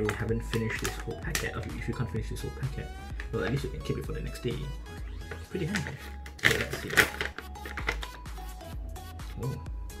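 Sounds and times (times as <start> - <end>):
background music: 0.0 - 10.0
plastic pouch crinkling: 5.7 - 8.2.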